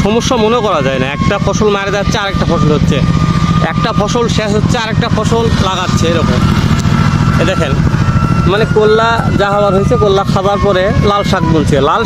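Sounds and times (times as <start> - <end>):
people talking: 0.0 - 6.6, 7.3 - 12.0
small engine rumbling: 0.0 - 12.0.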